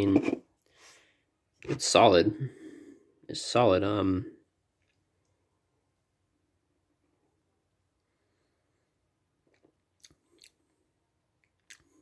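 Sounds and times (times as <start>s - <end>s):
mouth clicks and lip smacks: 9.4s - 10.7s, 11.4s - 12.0s.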